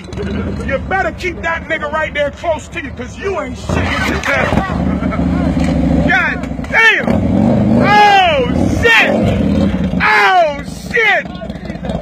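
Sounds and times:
motorcycle engine idling: 0:00.0 - 0:02.3, 0:04.4 - 0:12.0
men shouting and hollering: 0:00.0 - 0:12.0.

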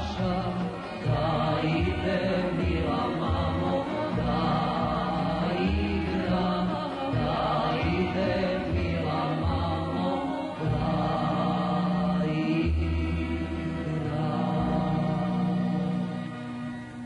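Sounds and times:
instrumental accompaniment with bass: 0:00.0 - 0:17.0.

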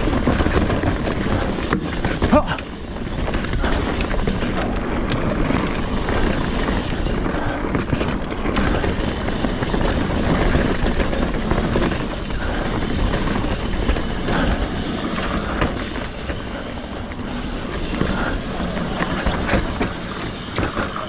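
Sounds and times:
bike clicks and rattles: 0:00.0 - 0:21.0
bike tyres rolling over dirt: 0:00.0 - 0:21.0.

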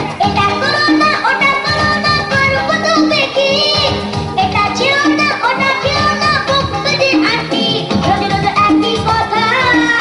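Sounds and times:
song with singing and beat: 0:00.0 - 0:10.0.

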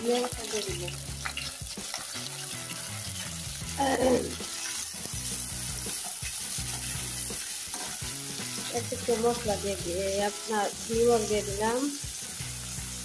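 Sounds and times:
oil sizzling in a pan: 0:00.0 - 0:13.0
spatula stirring food: 0:00.0 - 0:13.0.

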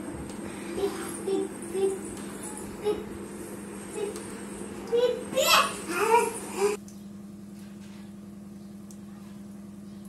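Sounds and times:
steady low hum: 0:00.0 - 0:10.0
child calling out: 0:04.9 - 0:06.8.

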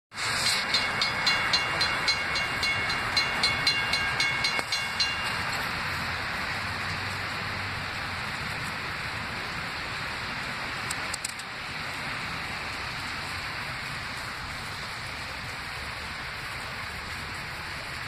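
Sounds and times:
rain hiss: 0:00.1 - 0:18.0
railroad crossing bell ringing: 0:00.2 - 0:07.3.

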